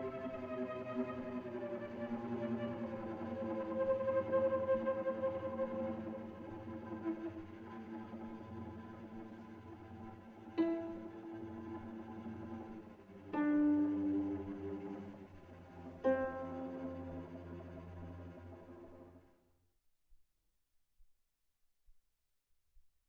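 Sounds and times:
solo cello playing: 0:00.0 - 0:09.4, 0:10.5 - 0:19.1.

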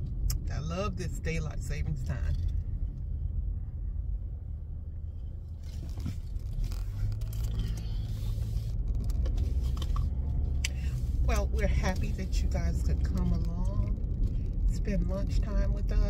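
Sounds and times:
car interior road rumble: 0:00.0 - 0:16.0.

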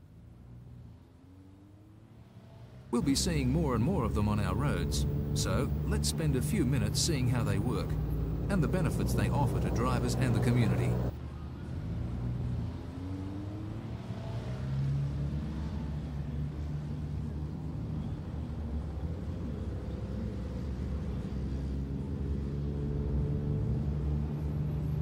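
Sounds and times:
low traffic rumble: 0:02.9 - 0:13.0
truck diesel engine pulling: 0:03.0 - 0:11.2.

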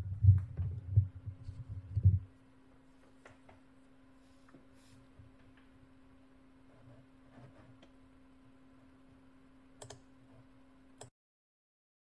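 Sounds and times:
low dull thumps: 0:00.0 - 0:02.3
faint steady hum: 0:00.0 - 0:11.1.

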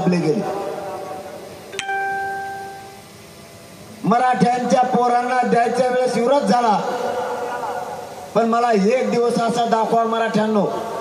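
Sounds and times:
bell-like ring: 0:01.7 - 0:03.0.

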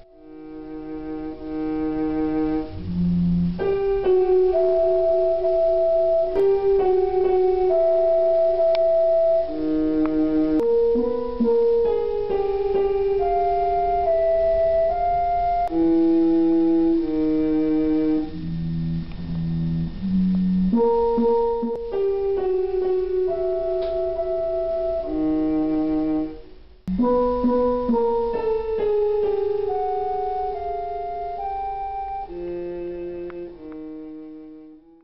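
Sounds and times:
slow electronic keyboard music: 0:00.0 - 0:35.0.

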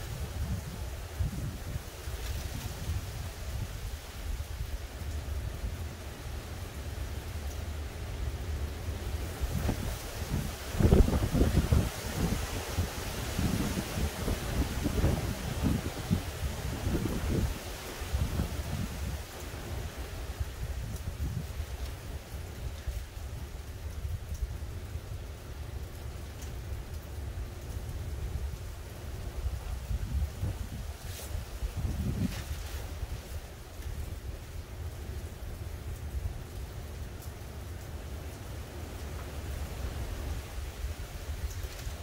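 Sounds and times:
wind hitting microphone: 0:00.0 - 0:04.8, 0:08.9 - 0:24.5, 0:28.3 - 0:34.6
wind gusting through trees: 0:00.0 - 0:42.0.

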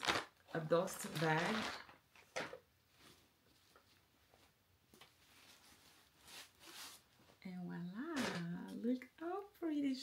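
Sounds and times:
fabric bag rustling: 0:00.0 - 0:02.0.

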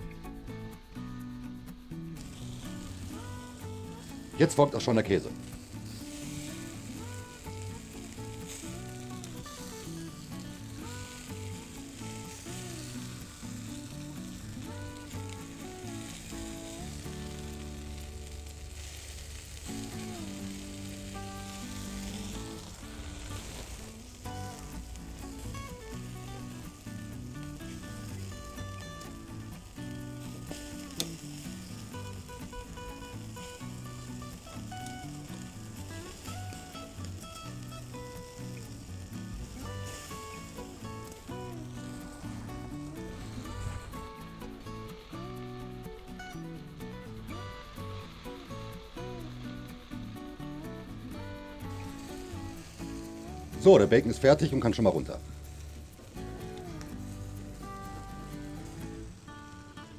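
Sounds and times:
background music: 0:00.0 - 0:59.9
meat sizzling on a grill: 0:00.0 - 0:59.9.

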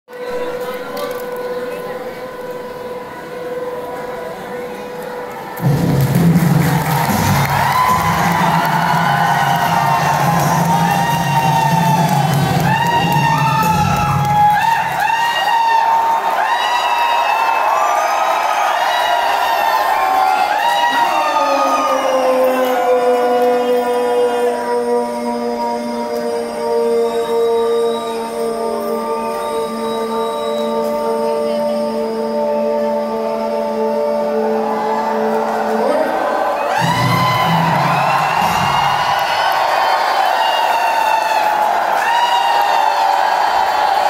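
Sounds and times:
long sliding note: 0:00.1 - 0:15.0
crowd cheering and shouting: 0:00.1 - 0:44.0
loud music: 0:00.2 - 0:44.0.

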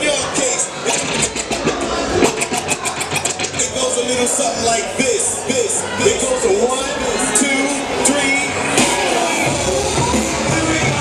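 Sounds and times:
hip hop music: 0:00.0 - 0:11.0
rapid sharp hits: 0:00.8 - 0:03.9.

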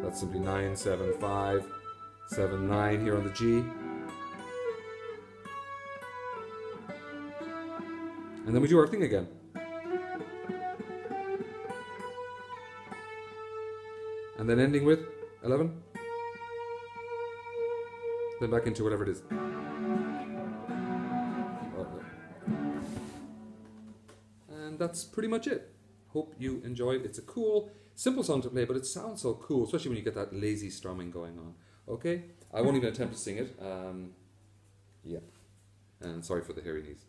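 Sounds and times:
electric guitar picked notes: 0:00.0 - 0:24.4.

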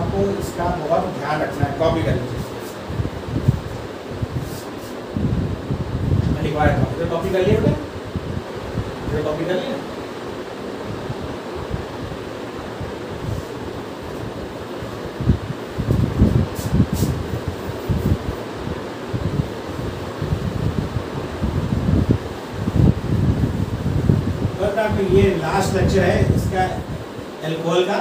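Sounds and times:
low air noise: 0:00.0 - 0:28.0
cloth wiping whiteboard: 0:02.3 - 0:02.8, 0:04.4 - 0:05.0, 0:15.8 - 0:18.5.

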